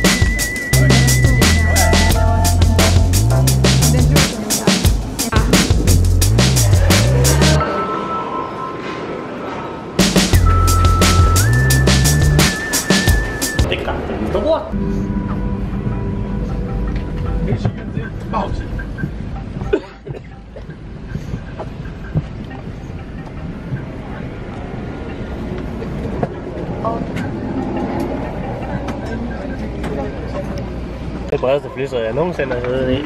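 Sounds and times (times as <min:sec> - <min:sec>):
passengers chatting: 0:00.0 - 0:33.0
passengers moving about: 0:00.0 - 0:33.0.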